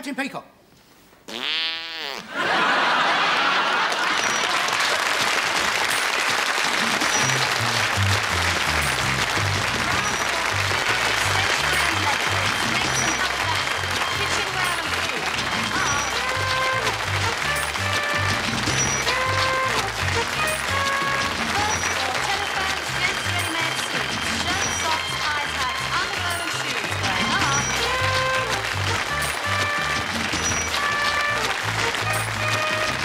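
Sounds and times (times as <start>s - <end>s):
audience laughing: 2.2s - 7.0s
audience applauding: 2.3s - 33.0s
theme music with bass line: 6.8s - 33.0s.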